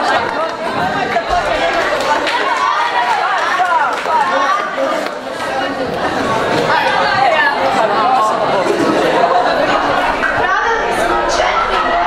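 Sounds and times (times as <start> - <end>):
crowd of teenagers chattering: 0.0 - 12.0.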